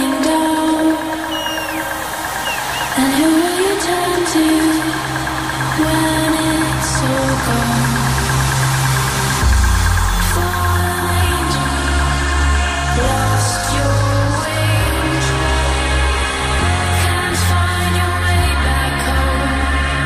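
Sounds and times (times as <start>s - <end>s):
electronic dance music: 0.0s - 20.0s
heavy bass: 0.0s - 20.0s.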